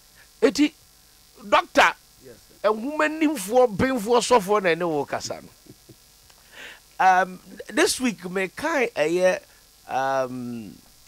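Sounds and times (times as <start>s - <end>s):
faint steady hum: 0.0s - 11.0s
soft hiss: 0.0s - 11.0s
man speaking: 1.4s - 5.5s.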